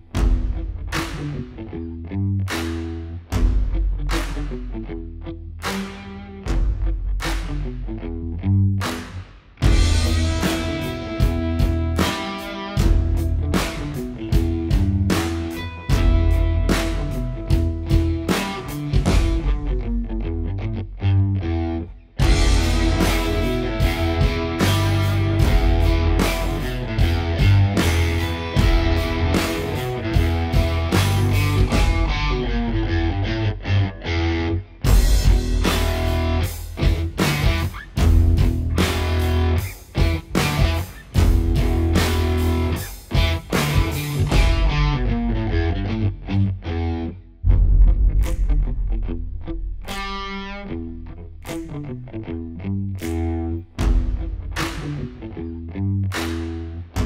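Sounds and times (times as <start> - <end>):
rock music with electric guitar: 0.0 - 57.0.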